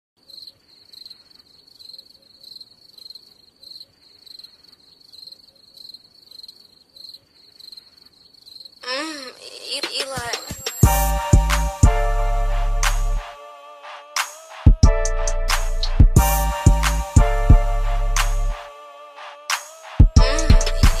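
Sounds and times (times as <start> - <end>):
cricket chirping: 0.2 - 8.9.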